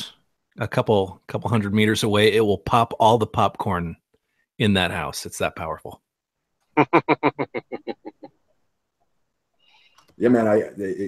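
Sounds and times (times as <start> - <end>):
man laughing: 6.8 - 8.3.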